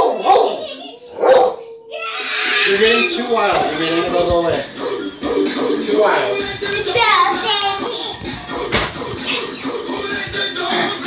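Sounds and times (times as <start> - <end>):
dog barking: 0.0 - 0.6, 1.2 - 1.6.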